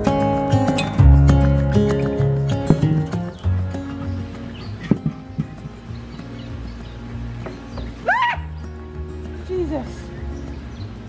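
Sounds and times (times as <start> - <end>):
background music: 0.0 - 11.0
woman screaming: 8.0 - 8.5.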